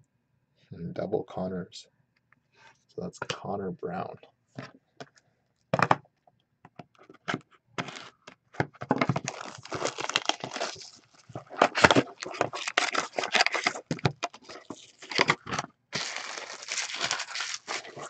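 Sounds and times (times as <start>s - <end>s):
cards and packaging handled: 7.0s - 18.0s
wrappers tearing and crinkling: 9.1s - 18.0s.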